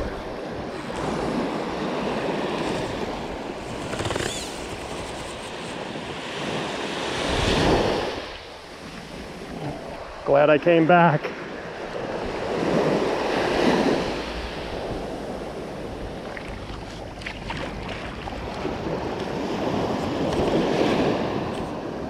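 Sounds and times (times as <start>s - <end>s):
surf washing up a beach: 0.0s - 22.0s
wind on microphone: 11.6s - 22.0s.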